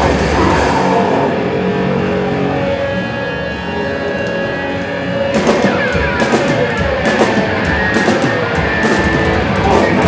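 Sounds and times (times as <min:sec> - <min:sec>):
distorted electric guitar chords: 0:00.0 - 0:10.0
drum and cymbal hits: 0:05.4 - 0:10.0.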